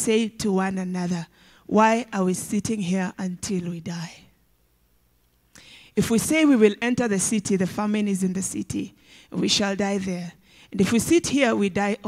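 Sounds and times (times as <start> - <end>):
woman reading aloud: 0.0 - 4.3, 6.0 - 12.0.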